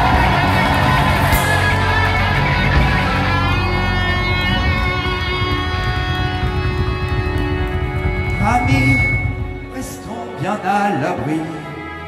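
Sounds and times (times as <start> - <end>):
bass and drums: 0.0 - 10.1
electric guitars: 0.0 - 12.0.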